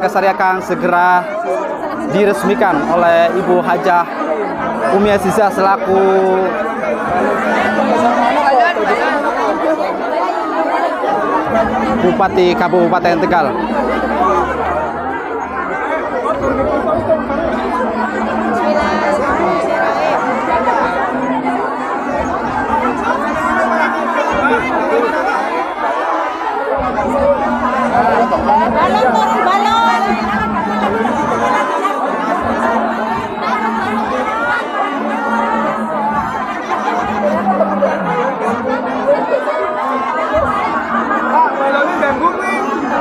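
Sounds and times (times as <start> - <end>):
crowd babble: 0.0 - 43.0.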